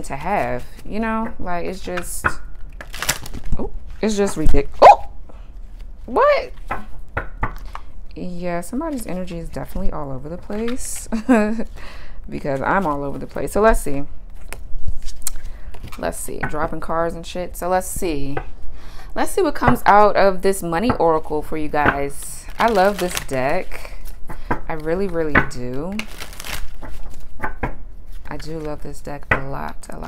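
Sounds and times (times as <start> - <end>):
cards being shuffled: 2.8 - 4.1, 14.3 - 16.1, 22.4 - 25.2, 25.9 - 27.4.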